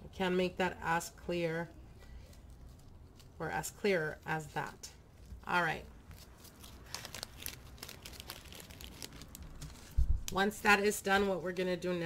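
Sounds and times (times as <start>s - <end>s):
plastic bag crinkling: 6.0s - 10.2s
small crackles: 6.0s - 10.4s.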